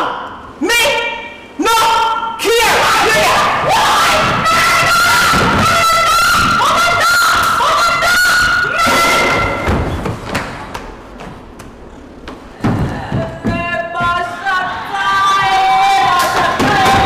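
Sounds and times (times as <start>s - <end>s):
loud thud: 5.2s - 6.6s, 8.9s - 10.6s.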